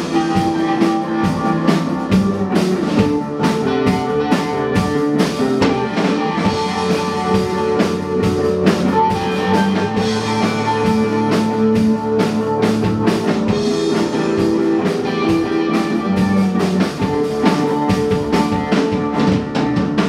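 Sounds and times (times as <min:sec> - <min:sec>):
electric guitars sustained notes: 0:00.0 - 0:20.0
steady drum beat: 0:00.0 - 0:20.0.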